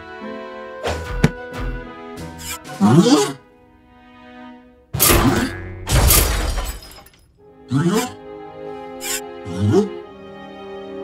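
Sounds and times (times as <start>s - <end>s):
faint background music: 0.0s - 11.0s
cartoon crashes: 5.0s - 7.1s.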